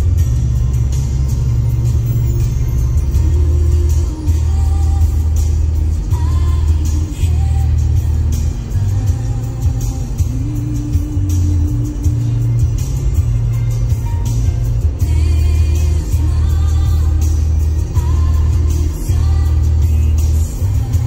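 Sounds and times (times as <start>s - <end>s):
music with heavy bass and beat: 0.0s - 21.0s.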